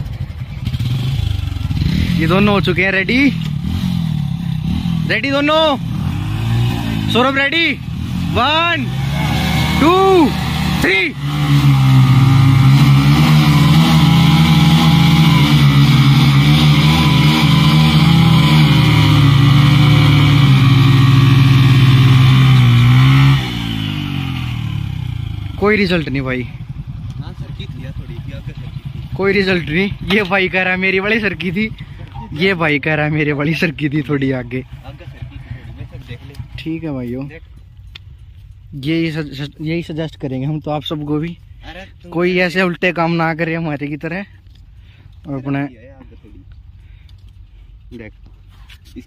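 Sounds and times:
motorcycle engine idling: 0:00.0 - 0:08.5, 0:23.6 - 0:38.7.

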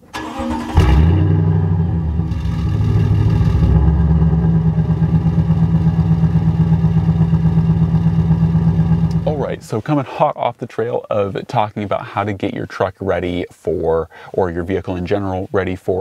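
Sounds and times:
starter cranking engine: 0:00.1 - 0:01.1
truck engine idling: 0:00.2 - 0:09.7.

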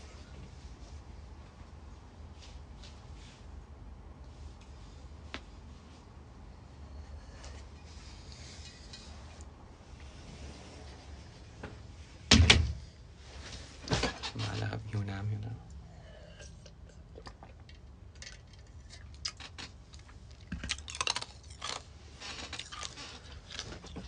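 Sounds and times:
door shutting with heavy thuds: 0:12.3 - 0:12.8.

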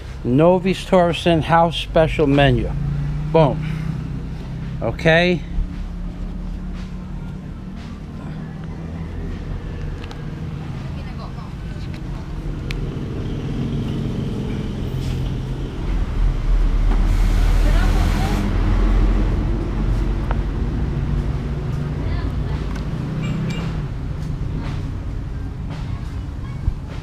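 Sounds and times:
road traffic engines: 0:00.0 - 0:27.0
vehicle passing: 0:00.0 - 0:27.0.

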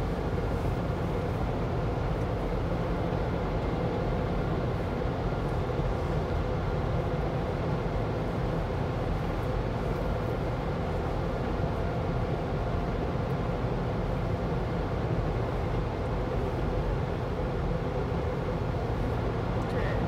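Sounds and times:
car wash rumble: 0:00.0 - 0:20.0.

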